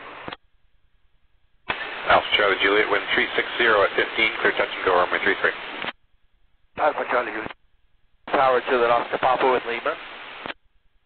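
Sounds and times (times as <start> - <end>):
radio carrier hiss: 1.7 - 6.0, 6.8 - 7.6, 8.2 - 10.6
radio squelch click: 5.6 - 6.0, 10.3 - 10.6.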